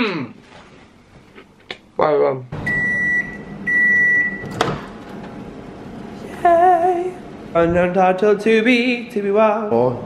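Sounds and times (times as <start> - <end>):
microwave long beeps: 2.6 - 4.6.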